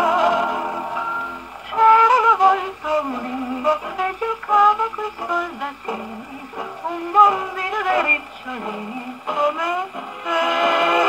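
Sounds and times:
woman singing with orchestra: 0:01.6 - 0:11.0.

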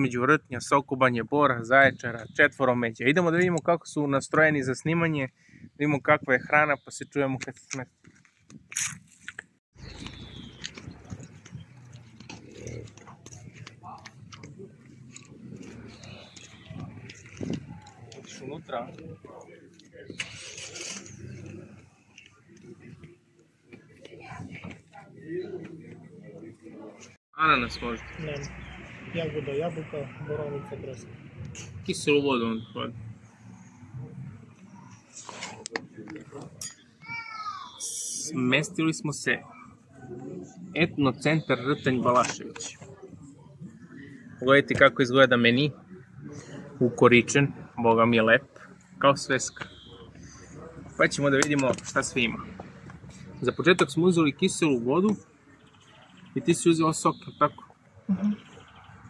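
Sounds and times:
footsteps on paving: 0:08.0 - 0:18.4
distant voices murmuring: 0:09.9 - 0:59.0.

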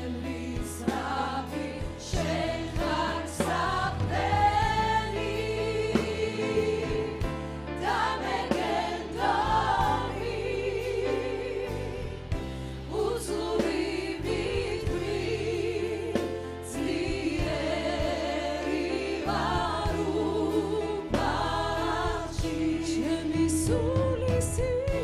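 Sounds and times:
church choir singing: 0:00.0 - 0:23.7
instrumental accompaniment: 0:00.0 - 0:25.0.

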